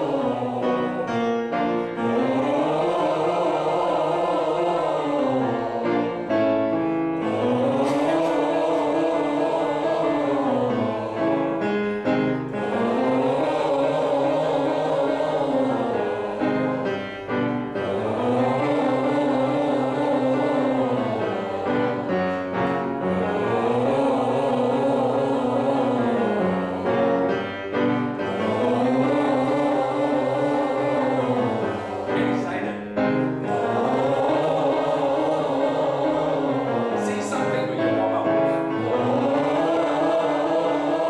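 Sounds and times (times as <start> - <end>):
piano: 0.0 - 41.0
voices singing sustained notes: 0.0 - 41.0.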